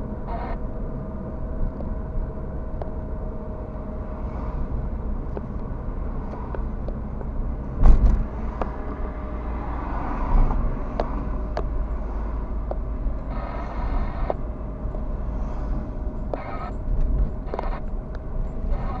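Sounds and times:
car tyre and engine rumble: 0.0 - 19.0
loud thump: 7.8 - 8.3.

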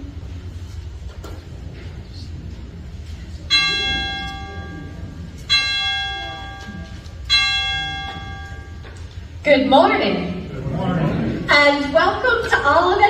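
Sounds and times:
bell ringing: 3.5 - 9.4.

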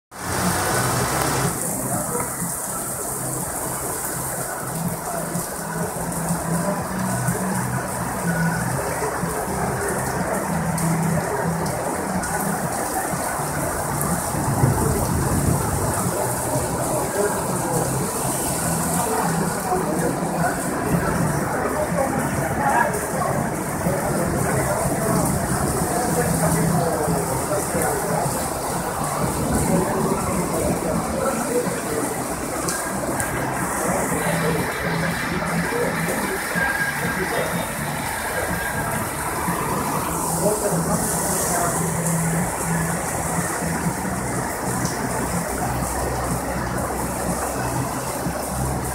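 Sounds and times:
heavy rain on pavement: 0.1 - 48.9.

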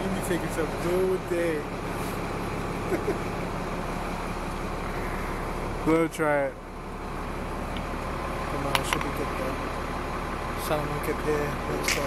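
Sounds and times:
bus engine hum: 0.0 - 12.0
road noise: 0.0 - 12.0.

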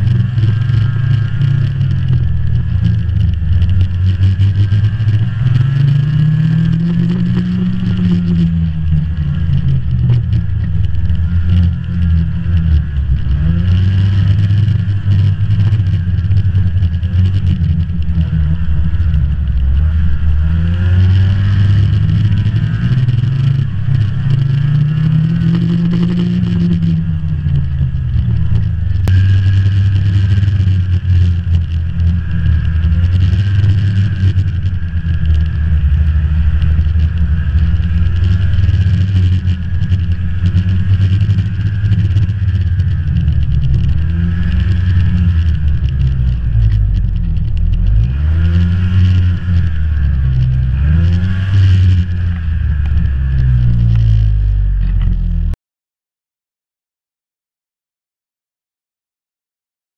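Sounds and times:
snowmobile engine running: 0.0 - 55.6.

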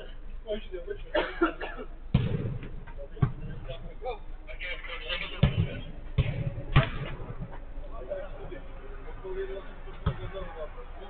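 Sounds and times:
football kicked thudding on turf: 2.1 - 3.5, 5.4 - 7.6
players shouting: 4.5 - 11.0.

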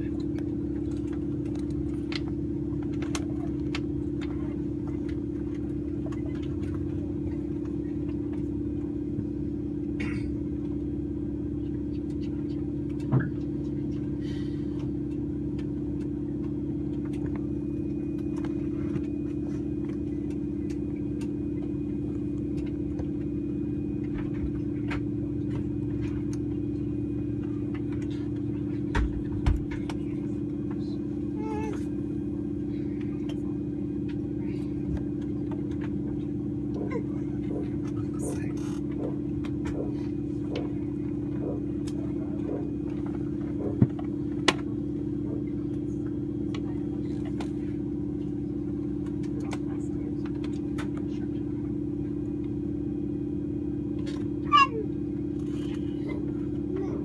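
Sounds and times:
low drone in aircraft cabin: 0.0 - 57.0.

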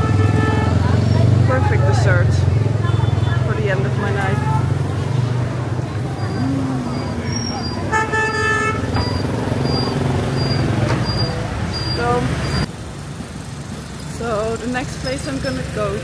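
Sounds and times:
vehicle horn: 0.0 - 1.1, 7.9 - 9.0
street traffic: 0.0 - 16.0
high electronic beep: 9.0 - 12.6.

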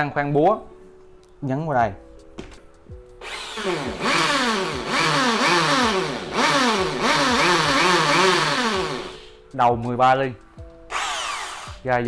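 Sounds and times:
hammer drill boring into wood: 3.2 - 9.4, 10.9 - 11.8.

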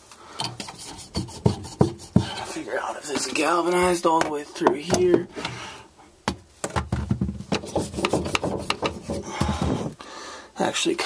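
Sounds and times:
hands handling wooden cabinet: 0.7 - 5.6, 6.3 - 10.0.

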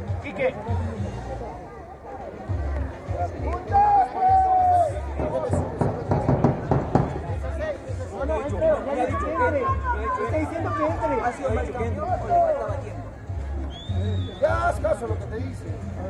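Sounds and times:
people talking indistinctly: 0.0 - 16.0.

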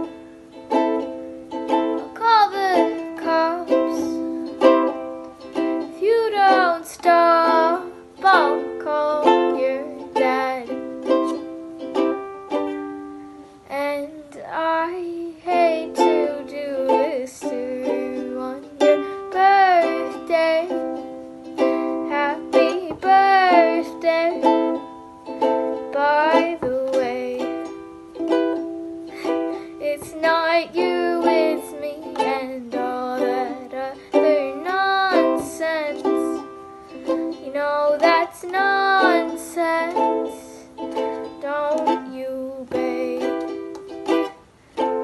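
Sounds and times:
girl singing: 0.0 - 45.0
ukulele strumming chords: 0.0 - 45.0.

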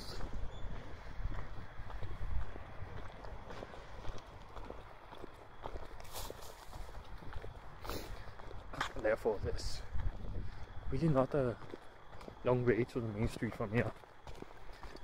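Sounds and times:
wind rumble on microphone: 0.0 - 11.8
footsteps walking: 0.0 - 15.0.

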